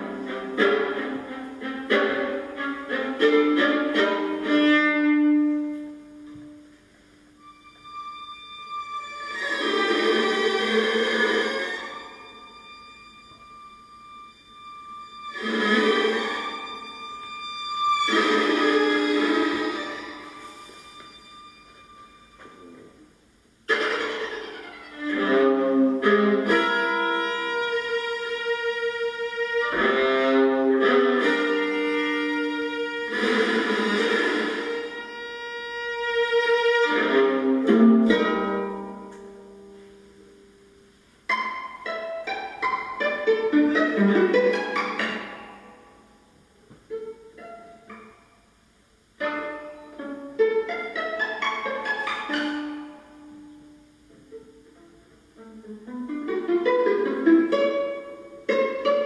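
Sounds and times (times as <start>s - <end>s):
bowed viola: 0.0s - 40.5s, 41.3s - 59.0s.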